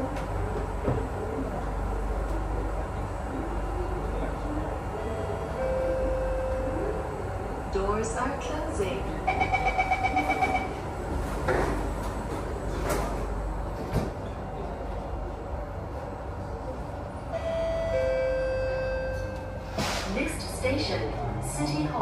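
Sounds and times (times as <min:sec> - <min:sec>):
train traction motor whine: 0:00.0 - 0:13.9
train door closing chime beeps: 0:05.1 - 0:06.8, 0:09.2 - 0:10.8, 0:17.4 - 0:19.8.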